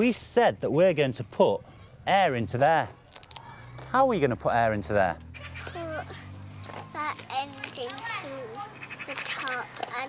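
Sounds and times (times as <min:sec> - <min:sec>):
children calling out: 0:05.4 - 0:10.0.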